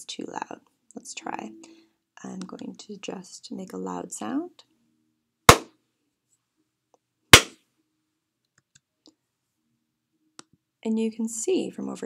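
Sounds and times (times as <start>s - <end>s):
loud sharp crack: 5.5s - 5.7s, 7.4s - 7.6s.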